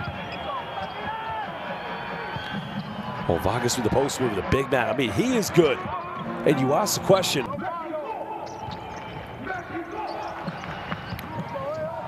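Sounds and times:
sneaker squeaks: 0:00.0 - 0:01.4, 0:08.2 - 0:12.0
arena crowd noise: 0:00.0 - 0:12.0.

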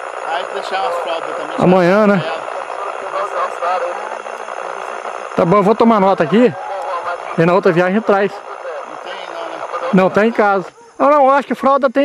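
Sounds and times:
steady background hiss: 0:00.0 - 0:12.0
faint voices talking: 0:00.1 - 0:11.8.

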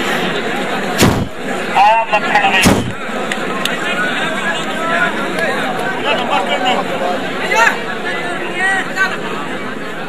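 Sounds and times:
crowd chattering: 0:00.0 - 0:10.0
heavy thumps: 0:01.0 - 0:01.4, 0:02.6 - 0:03.0.

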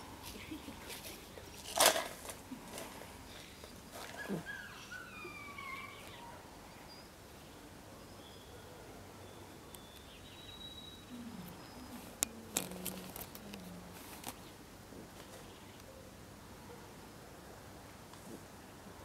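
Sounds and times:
puppy whining: 0:04.1 - 0:06.4.

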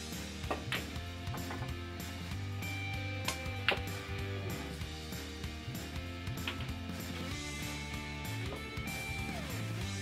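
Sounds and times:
soft background music: 0:00.0 - 0:10.0
pool balls clicking: 0:00.4 - 0:02.0, 0:03.2 - 0:04.1, 0:06.3 - 0:06.8.

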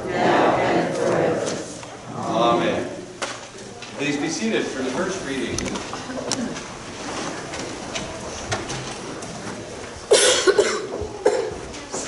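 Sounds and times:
person coughing: 0:10.1 - 0:11.6.

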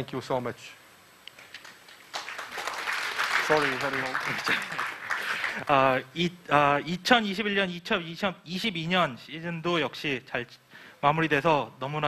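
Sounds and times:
audience applause: 0:01.6 - 0:05.7.

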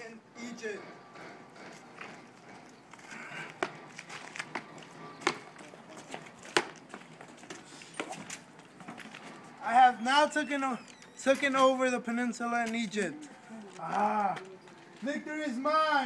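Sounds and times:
footsteps on pavement: 0:00.9 - 0:15.3.

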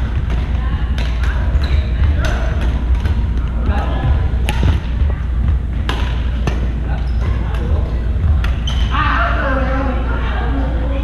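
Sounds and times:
people's voices: 0:00.0 - 0:11.0
steady low rumble: 0:00.0 - 0:11.0
rackets hitting shuttlecock: 0:00.1 - 0:03.6, 0:04.4 - 0:04.9, 0:05.7 - 0:07.8.

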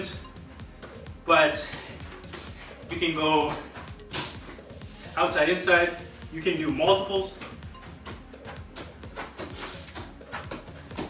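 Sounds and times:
feet knocking soccer ball: 0:07.3 - 0:11.0.

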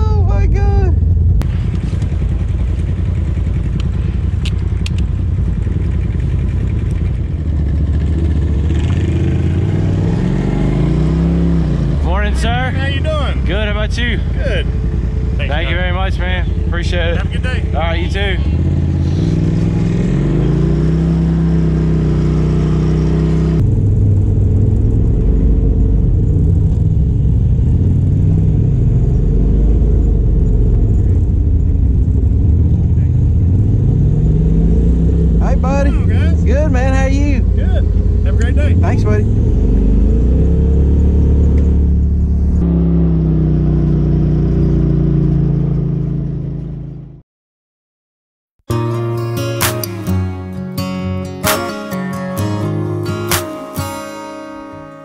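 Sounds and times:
off-road vehicle engine running: 0:00.0 - 0:47.2.

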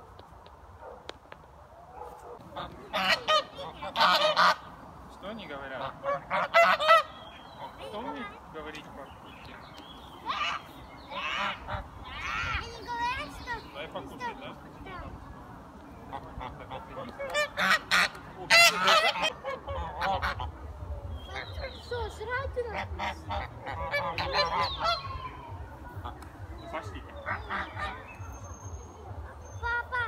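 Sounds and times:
geese honking: 0:02.4 - 0:04.8, 0:05.4 - 0:08.2, 0:10.2 - 0:12.4, 0:16.0 - 0:28.4.

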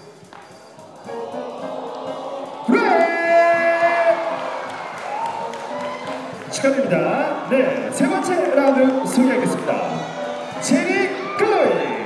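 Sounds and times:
crowd cheering: 0:00.8 - 0:12.0
man calling over microphone: 0:02.7 - 0:04.5, 0:06.5 - 0:12.0.

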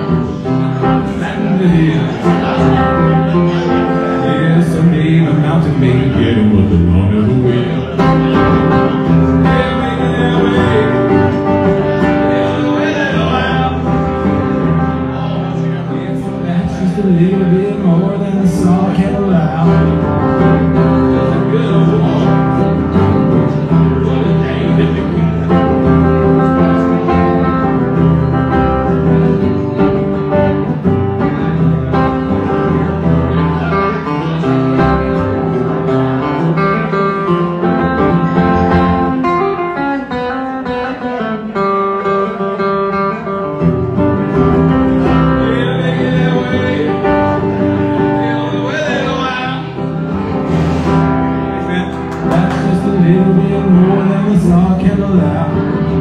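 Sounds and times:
acoustic guitar country song: 0:00.0 - 0:56.0.

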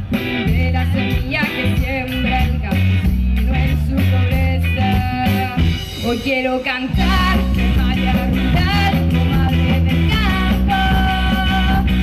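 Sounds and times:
bass line: 0:00.0 - 0:12.0
drums: 0:00.0 - 0:12.0
guitar: 0:00.0 - 0:12.0.

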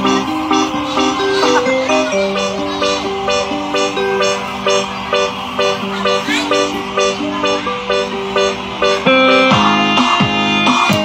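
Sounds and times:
upbeat dance music: 0:00.0 - 0:11.0.

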